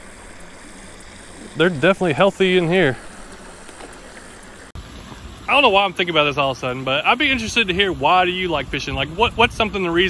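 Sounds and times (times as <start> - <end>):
creek water flowing: 0.0 - 10.0
dull background noise: 0.0 - 10.0.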